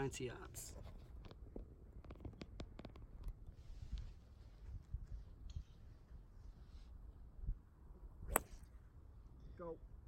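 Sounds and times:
golf club striking ball: 8.2 - 8.7.

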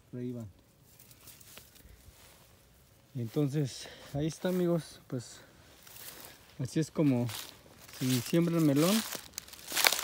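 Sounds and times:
garden plants rustling: 0.0 - 10.0.

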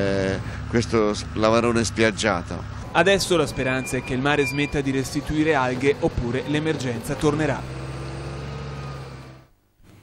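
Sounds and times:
diesel engine humming: 0.0 - 9.5.

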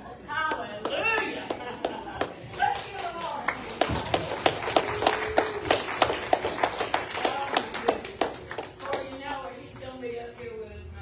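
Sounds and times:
hands clapping: 0.5 - 10.6.

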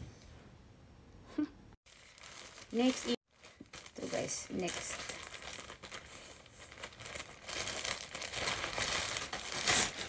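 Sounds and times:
plastic mailer bag crinkling: 1.9 - 10.0.

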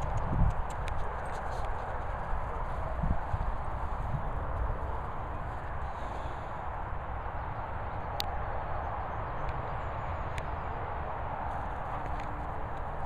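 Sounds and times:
steady low rumble: 0.0 - 8.3.

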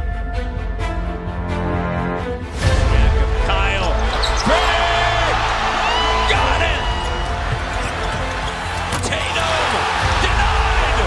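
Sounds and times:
sneaker squeaks: 3.9 - 4.8, 6.2 - 10.0.

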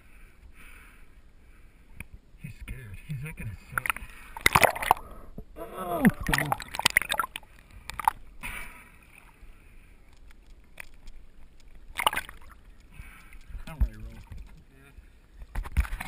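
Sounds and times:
water splashing and sloshing: 3.6 - 16.0.

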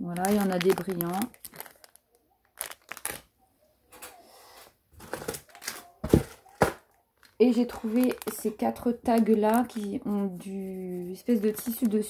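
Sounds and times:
plastic packets clicking: 0.0 - 3.3, 6.5 - 10.2, 11.2 - 12.0
plastic packets rustling: 0.0 - 3.3, 5.0 - 12.0.

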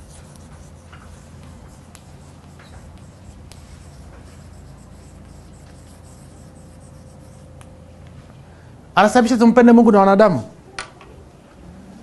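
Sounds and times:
chalk scratching on blackboard: 0.0 - 7.6
chalk tapping: 0.0 - 7.7.

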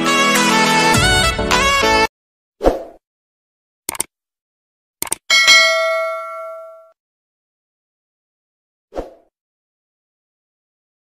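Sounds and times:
mouse click: 5.0 - 5.2
bell ding: 5.3 - 7.0.

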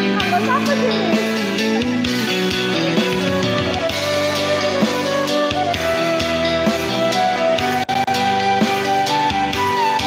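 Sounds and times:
karaoke backing music: 0.0 - 10.0
steady drum beat: 0.0 - 10.0
sustained guitar or keyboard notes: 0.0 - 10.0.

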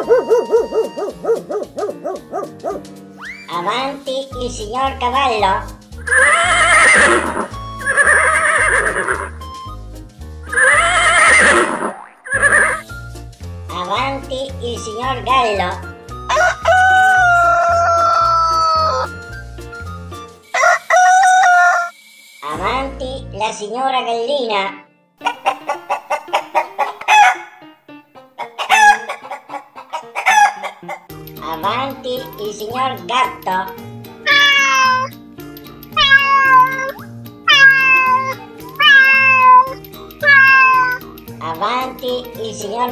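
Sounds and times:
hen cackling: 0.0 - 3.4, 6.1 - 9.3, 10.5 - 12.8, 16.3 - 19.1, 20.5 - 21.9, 25.2 - 27.6, 28.4 - 31.1, 34.3 - 35.1, 36.0 - 41.0
background music with beat: 0.0 - 6.3, 7.0 - 8.1, 9.0 - 10.7, 12.8 - 22.8, 31.1 - 42.9
horse whinnying: 6.1 - 9.4, 10.5 - 12.8, 34.3 - 35.1, 36.0 - 41.0.

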